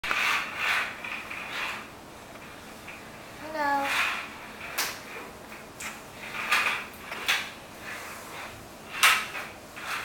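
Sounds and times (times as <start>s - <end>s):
toy car rolling on hard floor: 0.0s - 10.0s.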